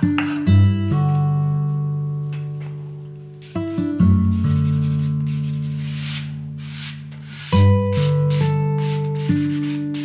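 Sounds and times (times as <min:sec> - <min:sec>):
cloth rubbing on wood: 0:03.5 - 0:10.0
guitar chord in background music: 0:07.5 - 0:10.0.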